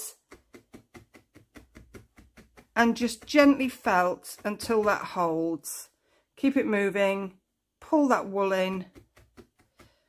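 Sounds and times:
felting needle soft taps: 0:00.0 - 0:05.5, 0:08.6 - 0:10.0.

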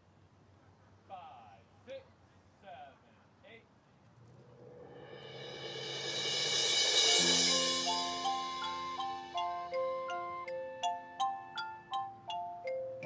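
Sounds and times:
cymbal roll: 0:04.4 - 0:10.5
sustained low chord: 0:05.1 - 0:10.7
mallet percussion notes: 0:05.2 - 0:13.0.

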